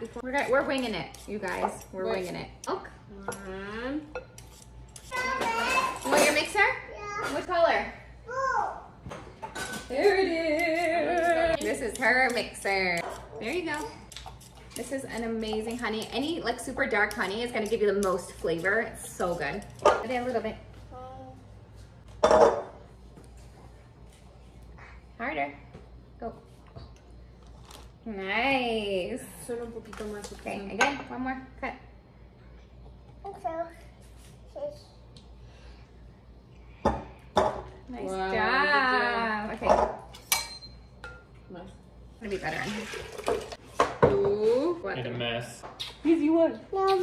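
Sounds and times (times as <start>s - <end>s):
kitchen utensils and bowls clinking: 0.1s - 3.5s, 4.1s - 6.7s, 9.1s - 20.4s, 39.5s - 41.3s, 42.2s - 44.4s.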